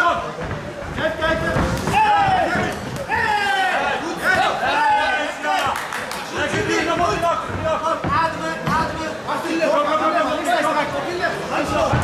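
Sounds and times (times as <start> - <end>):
people shouting: 1.8 - 5.7.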